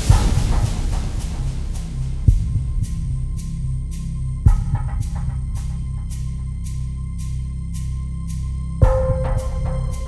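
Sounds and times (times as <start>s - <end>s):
suspense music with pulsing bass: 0.0s - 10.0s.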